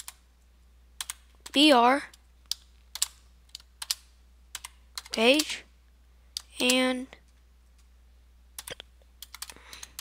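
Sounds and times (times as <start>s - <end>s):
computer keyboard typing: 0.0s - 0.2s, 1.0s - 5.6s, 8.6s - 10.0s.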